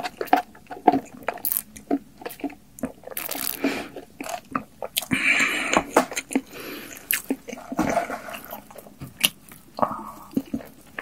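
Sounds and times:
wet chewing: 0.0 - 11.0.

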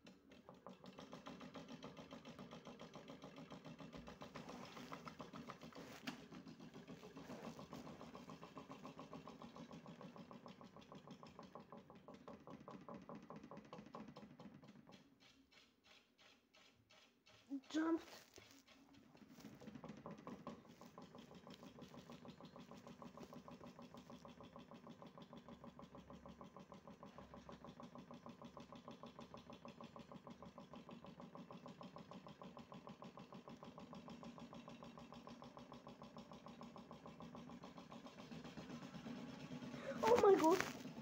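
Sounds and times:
toy washing machine motor humming: 0.0 - 41.0.

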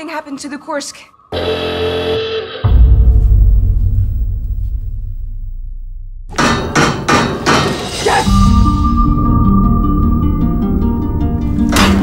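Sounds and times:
sharp hammer-like bangs: 6.3 - 8.2.

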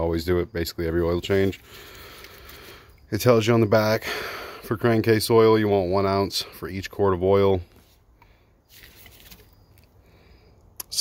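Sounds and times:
gloved hand rustling metal can: 8.7 - 9.6.

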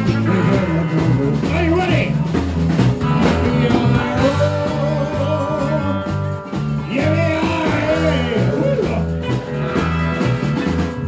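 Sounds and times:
drum kit: 0.0 - 11.0
electric guitars: 0.0 - 11.0
repeated bass line: 0.0 - 11.0.

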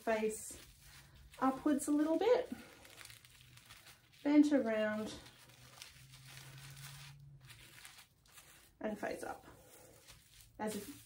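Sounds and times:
rustle of artificial tree branches: 0.0 - 11.0.

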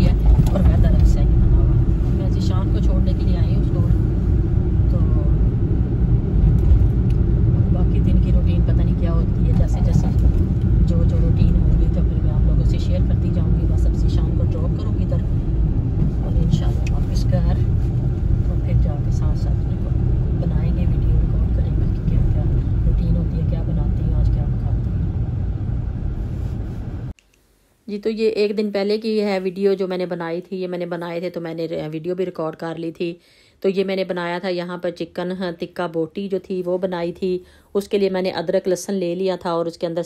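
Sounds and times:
engine and tyre rumble: 0.0 - 27.2.

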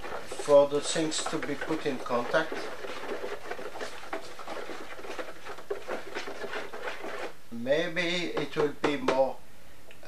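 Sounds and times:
slurry scratching and swishing in jug: 0.0 - 7.4.

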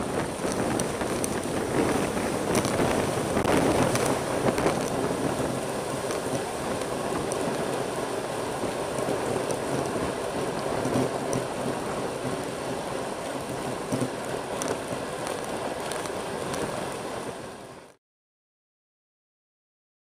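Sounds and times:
wind rushing over microphone: 0.0 - 17.9
bike tyres humming on asphalt: 0.0 - 18.0.

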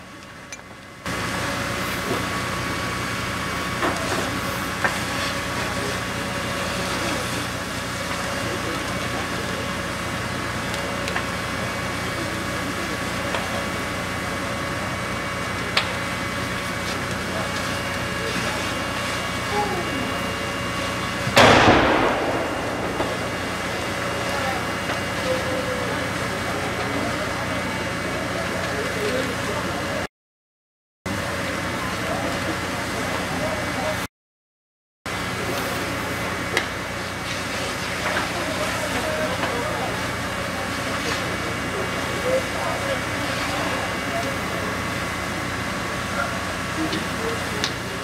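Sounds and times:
fire engine engine droning: 0.0 - 30.1, 31.1 - 34.1, 35.1 - 48.0
loud rushing burst: 21.4 - 25.2.

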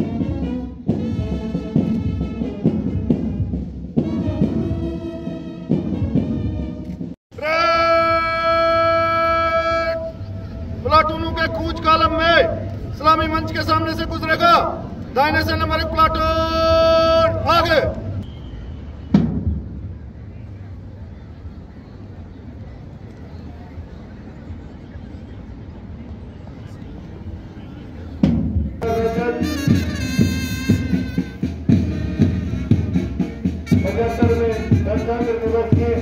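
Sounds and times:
march music with drum beats: 0.0 - 7.5, 15.3 - 20.1, 28.2 - 36.0.

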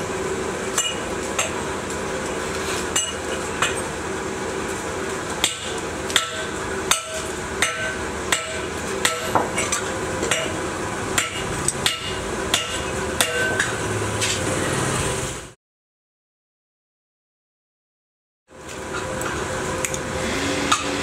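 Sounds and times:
hammer striking metal: 0.7 - 1.7, 3.0 - 3.9, 5.4 - 13.8.

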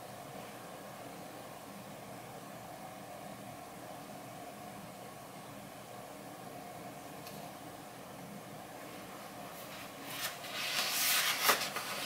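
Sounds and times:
background hum and hiss: 0.0 - 12.0
faint steady whine: 0.0 - 12.0.

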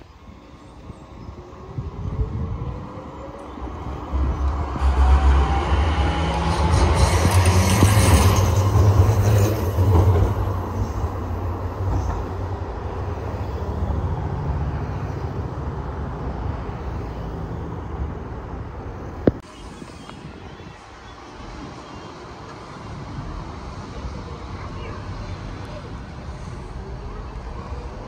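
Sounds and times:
tram passing with whine: 0.0 - 28.0
cars driving past: 2.5 - 28.0.

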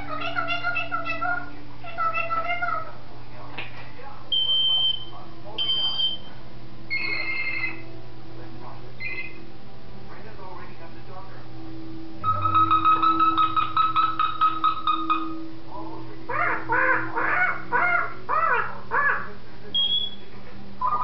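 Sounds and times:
parrot drawn-out calls: 0.0 - 3.0, 16.3 - 19.3
parrot high whistles: 9.0 - 9.4.

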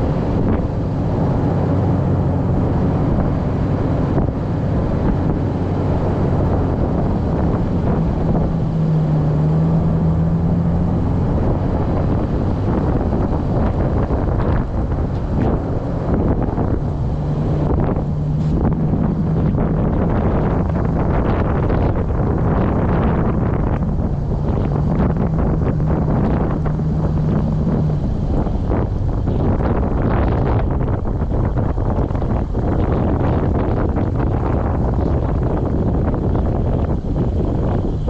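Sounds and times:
truck engine running: 0.0 - 38.0
wind rumble on microphone: 0.0 - 38.0.

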